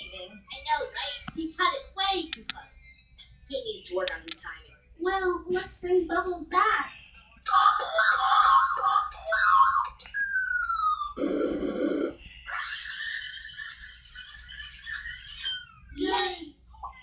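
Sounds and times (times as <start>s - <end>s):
keypad clicks: 2.3s - 2.6s.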